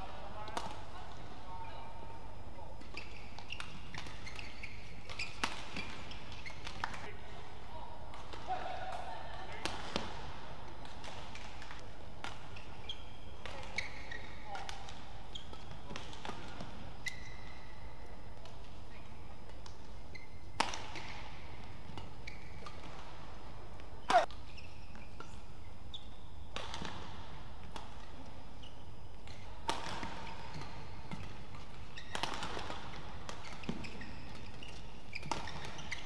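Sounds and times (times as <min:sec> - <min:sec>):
shoes squeaking on court: 0:02.6 - 0:07.1, 0:11.0 - 0:36.0
racket hitting shuttlecock: 0:02.8 - 0:07.0, 0:08.1 - 0:17.8, 0:18.4 - 0:25.5, 0:26.5 - 0:28.2, 0:29.2 - 0:36.0.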